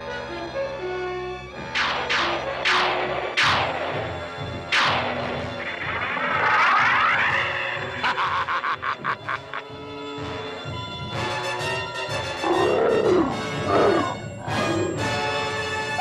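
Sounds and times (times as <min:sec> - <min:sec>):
dramatic cartoon music: 0:00.1 - 0:16.0
falling electronic zap: 0:04.7 - 0:08.0
rapid stuttering electronic pulse: 0:04.7 - 0:08.1
warbling electronic whine: 0:05.4 - 0:08.1
cartoon dragon roaring: 0:12.4 - 0:15.2.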